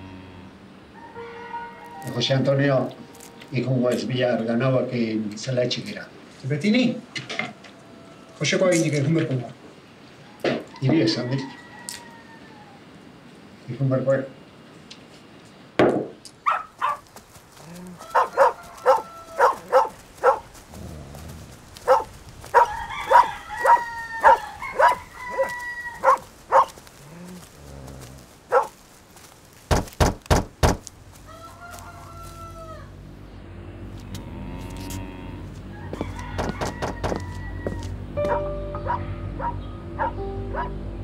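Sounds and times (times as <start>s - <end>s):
chickens clucking and crowing: 0.0s - 3.6s, 7.1s - 8.8s, 10.1s - 13.2s, 16.8s - 29.4s, 31.0s - 41.0s
heavy thumps: 29.6s - 31.0s, 36.0s - 37.2s
music: 38.0s - 41.0s.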